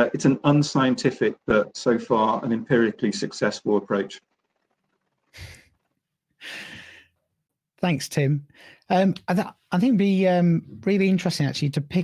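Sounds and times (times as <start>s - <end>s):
person breathing: 5.4s - 5.6s, 6.4s - 7.2s, 8.5s - 8.9s.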